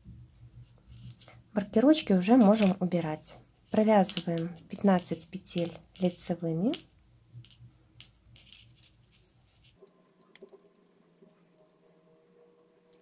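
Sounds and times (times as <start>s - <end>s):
knitting needles ticking: 2.1s - 8.9s, 9.7s - 11.8s.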